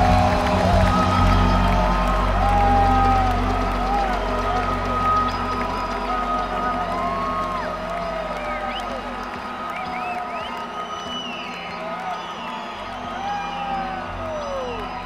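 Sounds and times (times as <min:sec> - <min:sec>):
crowd cheering and whooping: 0:00.0 - 0:15.0.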